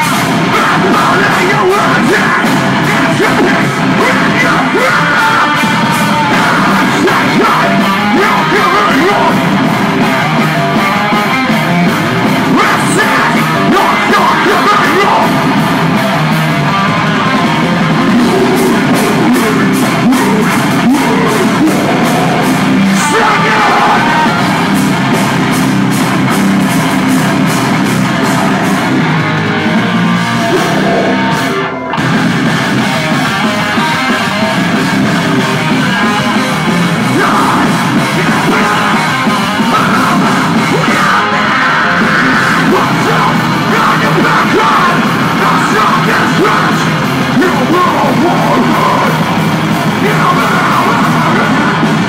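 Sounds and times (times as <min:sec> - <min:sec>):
distorted electric guitars: 0:00.0 - 0:52.0
drums: 0:00.0 - 0:52.0
metal band playing live: 0:00.0 - 0:52.0
person yelling vocals: 0:00.4 - 0:09.5, 0:12.5 - 0:15.4, 0:18.0 - 0:24.6, 0:30.4 - 0:31.4, 0:36.2 - 0:49.3, 0:49.9 - 0:51.9.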